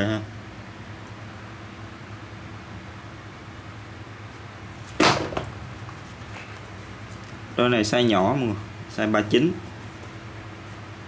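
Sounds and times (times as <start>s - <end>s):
low room hum: 0.0s - 11.0s
sneaker slapping tiled floor: 4.8s - 6.2s.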